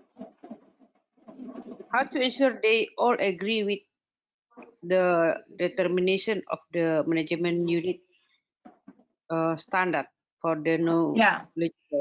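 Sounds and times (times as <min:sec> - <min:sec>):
person speaking over video call: 0:01.3 - 0:03.8, 0:04.6 - 0:08.0, 0:08.7 - 0:12.0.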